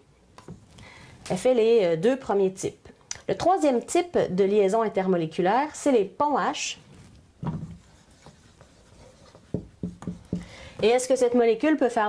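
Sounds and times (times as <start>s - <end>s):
marker writing on whiteboard: 7.4s - 11.0s.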